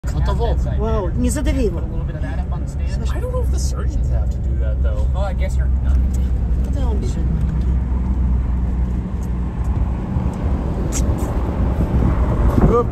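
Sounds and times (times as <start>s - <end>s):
vehicle driving on snow: 0.3s - 12.9s.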